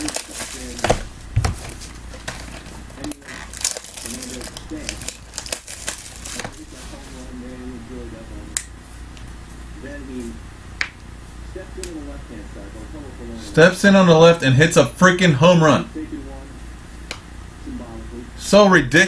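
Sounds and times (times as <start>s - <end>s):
cardboard boxes crinkling and rustling: 0.0s - 7.2s
box thumping on table: 0.8s - 1.7s.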